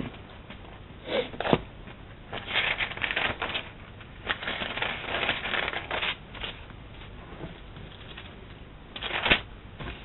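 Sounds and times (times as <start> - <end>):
pages turning: 2.3 - 6.6, 7.9 - 8.4, 9.0 - 10.0.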